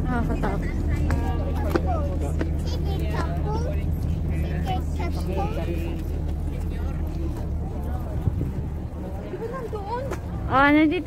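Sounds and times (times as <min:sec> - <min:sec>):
low engine drone: 0:00.0 - 0:11.0
people talking: 0:00.0 - 0:11.0.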